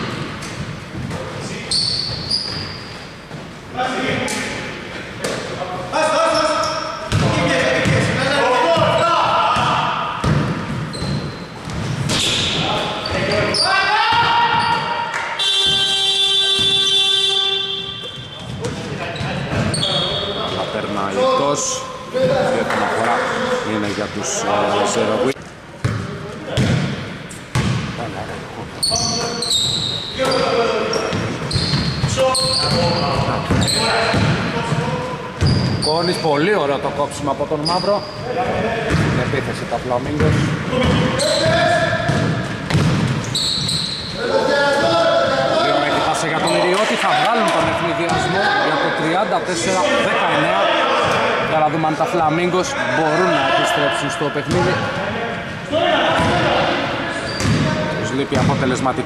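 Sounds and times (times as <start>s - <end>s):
players' voices echoing: 0.0s - 59.0s
basketball bouncing on wooden floor: 7.1s - 8.1s, 9.6s - 12.2s, 42.0s - 43.3s
steady buzzer tone: 15.4s - 18.2s.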